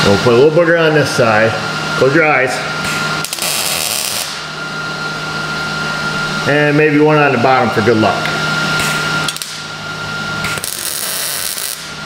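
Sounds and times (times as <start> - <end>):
welder crackling buzz: 3.2 - 4.5, 9.2 - 9.7, 10.4 - 12.0.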